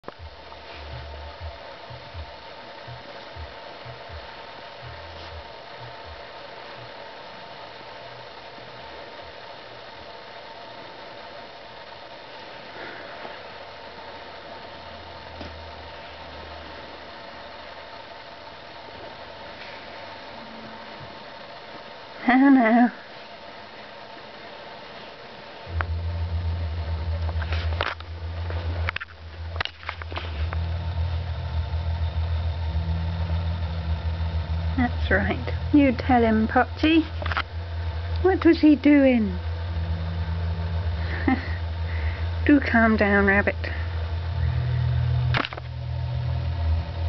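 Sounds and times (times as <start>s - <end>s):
mechanical hum with hiss: 0.0s - 47.0s.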